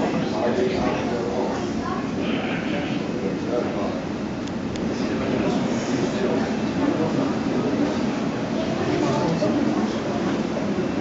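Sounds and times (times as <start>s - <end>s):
murmur of people talking: 0.0s - 11.0s.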